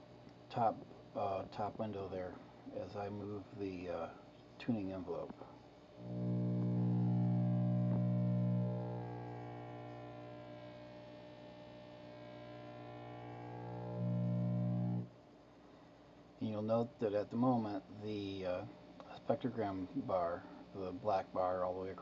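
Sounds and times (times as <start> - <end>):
radio signal buzz: 6.0 - 15.1.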